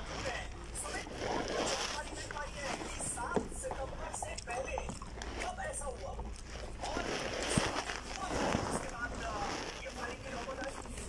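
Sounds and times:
plastic crinkling: 0.0s - 11.0s.

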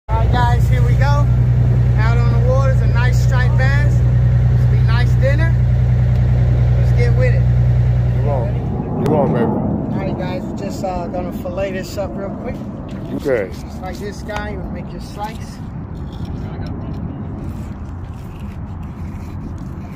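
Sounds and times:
boat engine running: 0.1s - 13.4s
people's voices: 0.1s - 15.6s.

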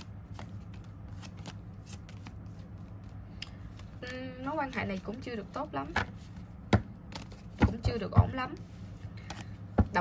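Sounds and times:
cards shuffling: 0.0s - 7.6s
steady low hum: 0.0s - 10.0s.

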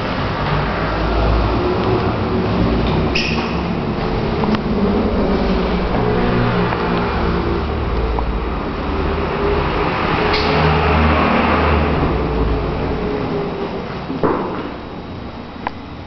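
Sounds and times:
vehicle engine deep hum: 0.0s - 16.0s.

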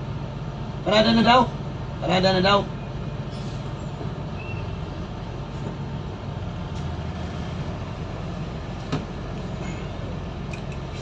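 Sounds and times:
bus engine rumbling: 0.0s - 11.0s.

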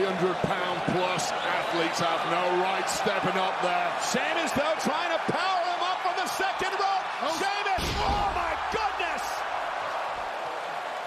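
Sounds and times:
people shouting: 4.4s - 10.6s
heavy thud on wrestling ring: 7.8s - 8.6s.

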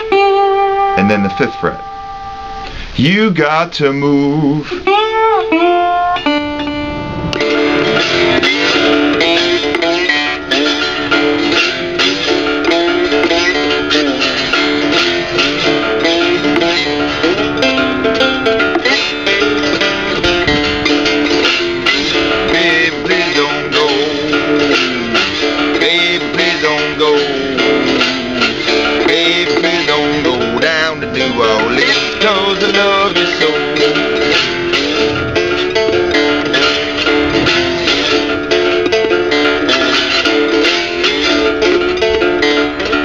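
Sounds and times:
resonator guitar ringing: 0.0s - 43.0s
slide guitar blues: 0.0s - 43.0s.

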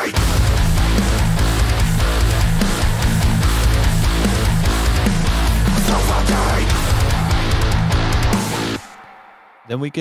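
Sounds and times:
heavy metal band music: 0.0s - 10.0s.

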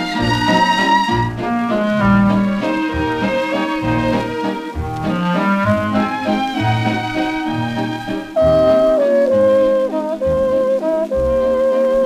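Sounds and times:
dance orchestra playing: 0.0s - 10.7s.

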